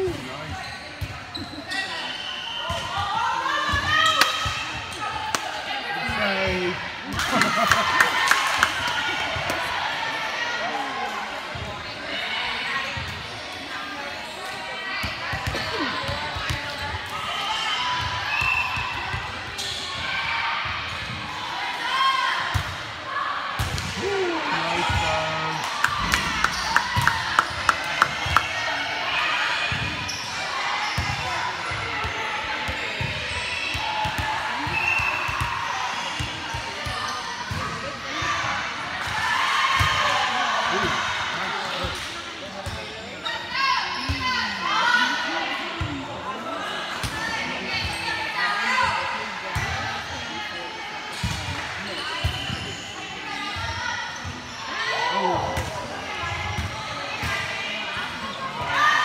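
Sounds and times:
players chattering and calling: 0:00.0 - 0:59.0.

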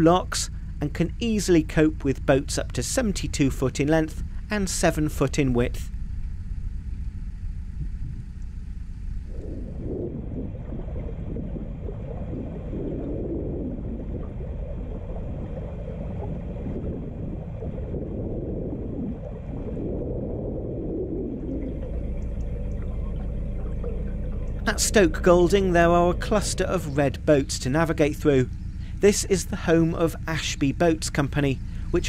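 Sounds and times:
boat engine low rumble: 0:00.0 - 0:32.0
rush of water or wind: 0:09.3 - 0:22.2.

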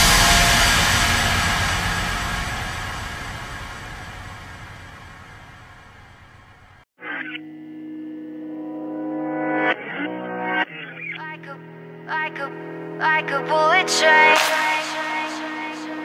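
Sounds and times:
electronic drum and bass track: 0:00.0 - 0:04.4
sustained music chords: 0:00.0 - 0:06.0.

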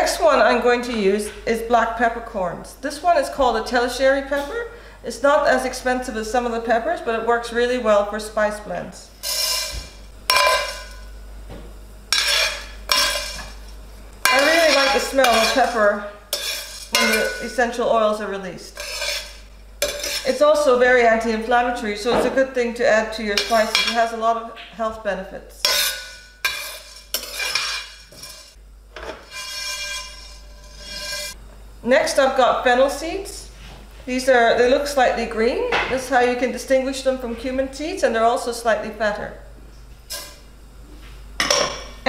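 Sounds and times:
metal spoon scraping frying pan: 0:09.2 - 0:11.0, 0:12.1 - 0:17.6, 0:18.7 - 0:20.4, 0:23.3 - 0:24.1, 0:25.6 - 0:31.4
peppercorns rattling in metal pan: 0:12.2 - 0:13.6, 0:14.2 - 0:17.6, 0:23.4 - 0:24.1.

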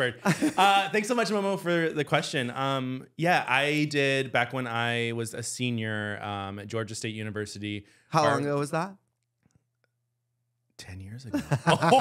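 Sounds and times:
man speaking: 0:00.0 - 0:09.0.

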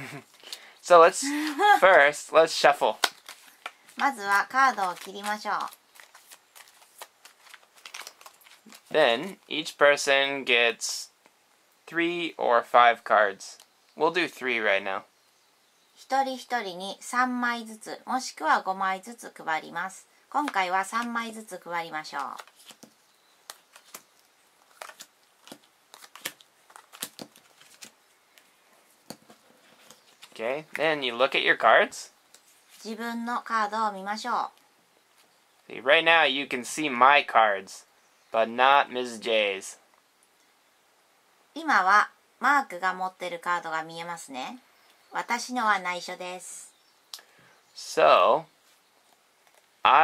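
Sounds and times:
sleeved cards being shuffled: 0:01.8 - 0:09.4, 0:22.1 - 0:30.8.

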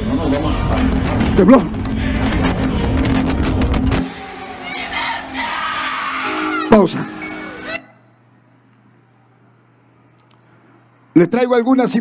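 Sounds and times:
background sound: 0:03.8 - 0:09.2.

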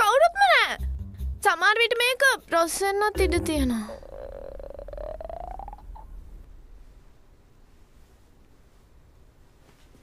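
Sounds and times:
woman whining: 0:03.7 - 0:05.7.

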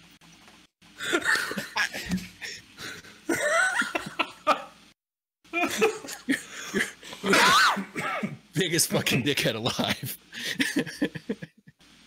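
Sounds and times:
coughing: 0:01.0 - 0:04.8, 0:05.5 - 0:09.4
men laughing: 0:01.0 - 0:04.8, 0:05.5 - 0:07.7, 0:09.7 - 0:11.8.

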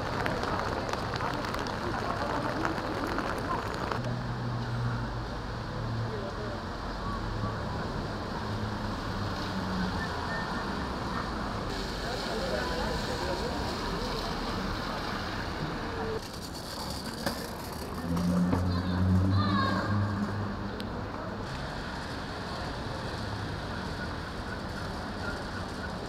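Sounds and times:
traffic on wet road: 0:00.0 - 0:26.0
vehicle engine: 0:00.0 - 0:26.0.

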